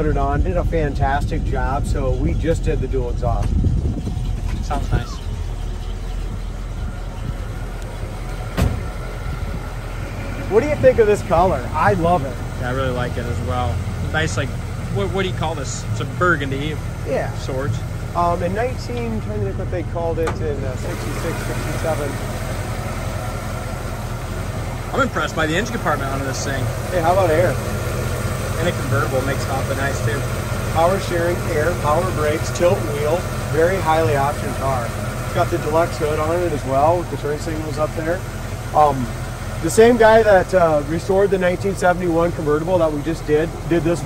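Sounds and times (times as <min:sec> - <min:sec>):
engine idling: 0:00.0 - 0:44.0
thump: 0:08.5 - 0:09.0.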